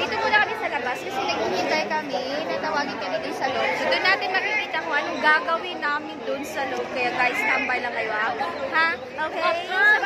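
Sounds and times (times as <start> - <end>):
women chattering: 0.0 - 10.0.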